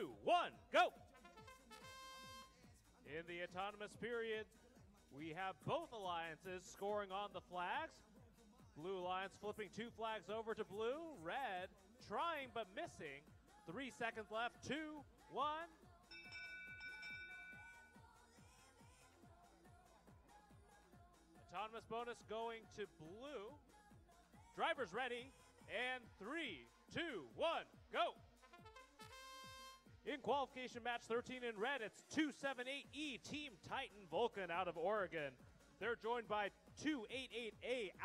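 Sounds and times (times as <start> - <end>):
faint background music: 0.0 - 38.0.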